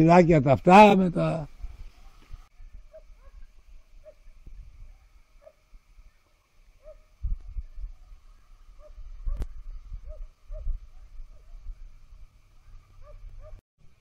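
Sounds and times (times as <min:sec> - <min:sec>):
wind rumbling on microphone: 0:01.5 - 0:05.9, 0:06.8 - 0:14.0.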